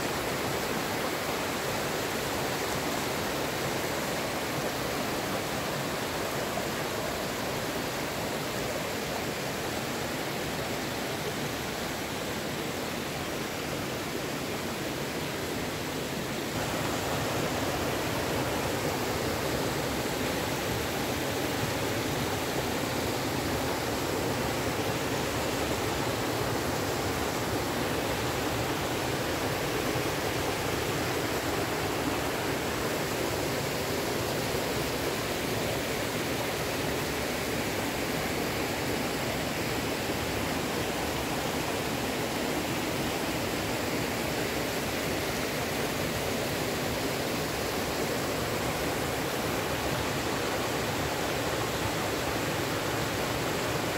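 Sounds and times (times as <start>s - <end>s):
stream rushing over boulders: 0.0s - 53.9s.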